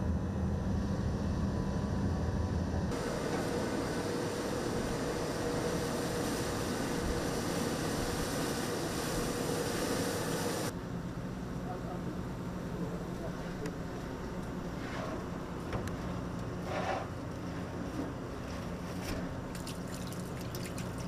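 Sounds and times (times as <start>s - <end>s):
boat engine rumble: 0.0s - 21.0s
drilling rig machinery hiss and hum: 2.9s - 17.2s.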